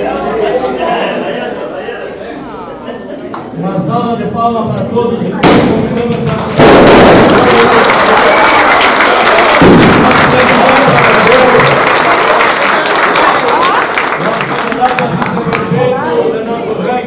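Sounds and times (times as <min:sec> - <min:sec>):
crowd applauding: 0:06.0 - 0:15.7.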